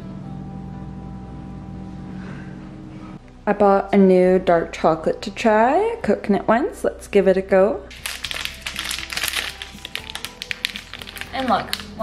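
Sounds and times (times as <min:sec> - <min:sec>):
background music: 0:00.0 - 0:12.0
foil wrapper crinkling: 0:07.9 - 0:12.0.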